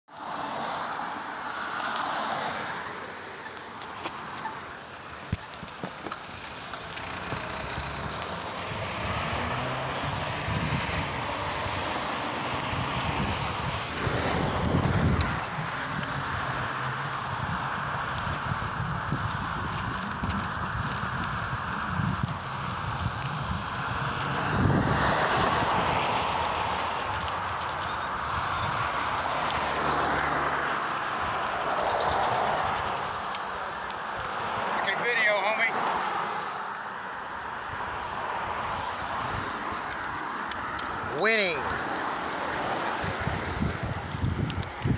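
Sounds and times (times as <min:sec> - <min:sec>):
road traffic passing: 0:00.1 - 0:44.9.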